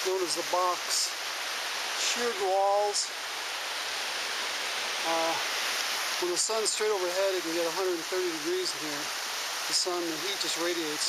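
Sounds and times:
creek water rushing: 0.0s - 11.0s.

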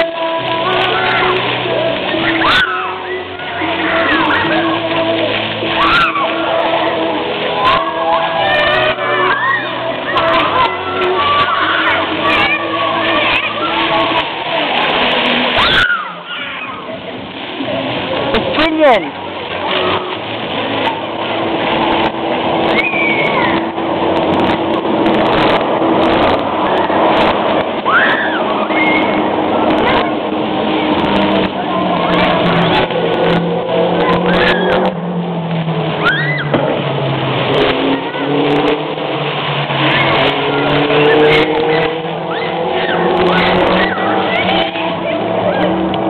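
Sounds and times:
children shouting: 0.0s - 17.4s, 19.4s - 21.5s, 22.5s - 24.2s, 26.3s - 35.2s, 35.8s - 46.0s
fountain jets splashing: 0.0s - 46.0s
falling squeal: 36.0s - 36.5s.

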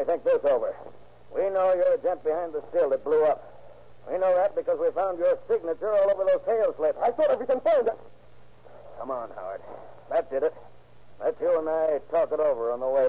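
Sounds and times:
faint low hum: 0.0s - 13.0s
men speaking: 0.0s - 13.0s.

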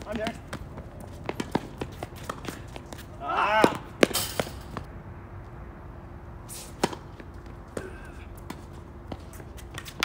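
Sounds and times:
racket swing swish: 6.4s - 10.0s.

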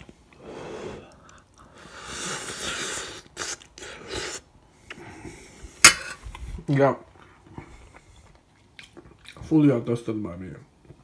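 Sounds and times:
slurping noodles: 0.4s - 4.5s.

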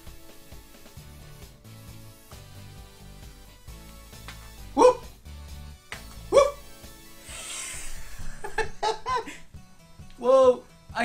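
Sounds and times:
background music: 0.0s - 11.0s
man laughing: 4.8s - 5.1s, 6.3s - 6.7s, 7.8s - 9.5s.

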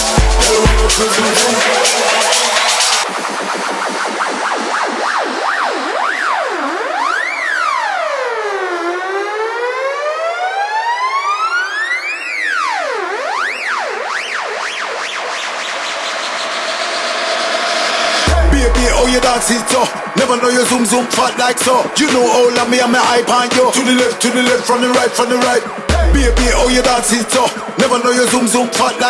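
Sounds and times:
house music breakdown: 0.0s - 8.9s, 12.5s - 29.0s
siren-like synth tone sweeping: 0.0s - 29.0s.

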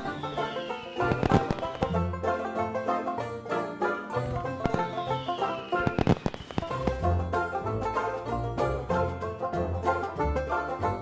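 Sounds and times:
crackling firework bangs: 0.0s - 2.0s, 4.6s - 7.0s
firework whistle falling in pitch: 0.0s - 2.1s, 4.6s - 7.0s
music: 0.0s - 11.0s.

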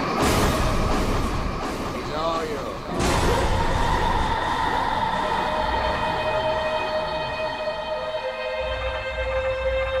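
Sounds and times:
loud rushing noise with rumble: 0.0s - 7.3s
music drone: 0.0s - 10.0s.

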